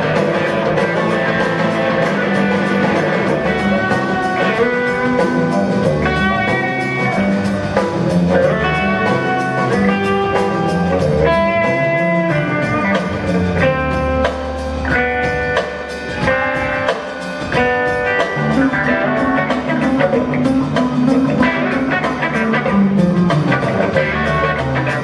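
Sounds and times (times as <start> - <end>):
drum kit: 0.0 - 25.0
electric bass: 0.0 - 25.0
electric guitar single-note lines: 0.0 - 25.0.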